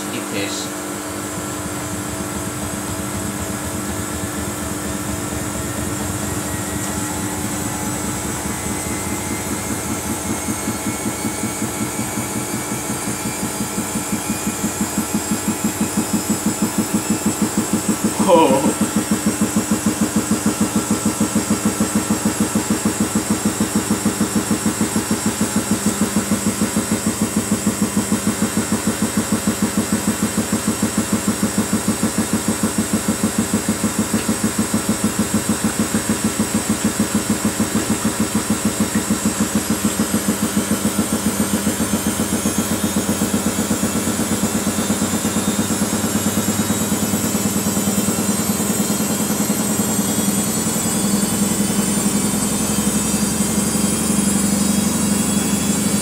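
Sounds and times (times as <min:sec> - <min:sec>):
washing machine spinning: 0:00.0 - 0:56.0
motor whine rising: 0:01.1 - 0:31.5.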